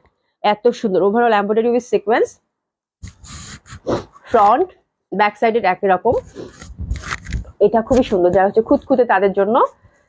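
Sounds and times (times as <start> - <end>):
woman speaking: 0.4 - 2.4, 4.3 - 6.4, 7.6 - 9.8.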